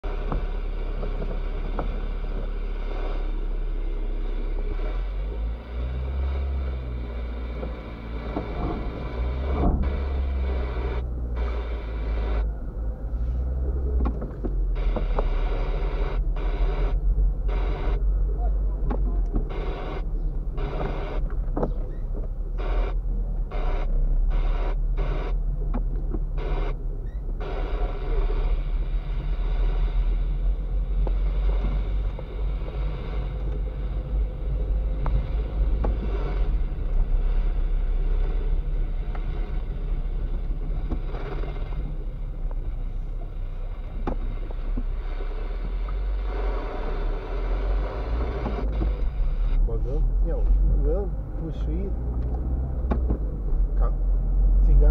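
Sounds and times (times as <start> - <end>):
car engine and road rumble: 0.0 - 54.9.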